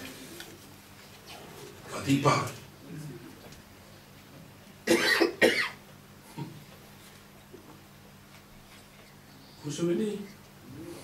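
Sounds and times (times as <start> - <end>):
man coughing: 4.8 - 5.8.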